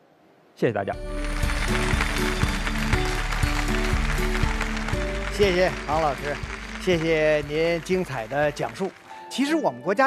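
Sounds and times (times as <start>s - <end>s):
music with steady beat: 1.0s - 8.5s
studio audience applauding: 1.0s - 9.6s.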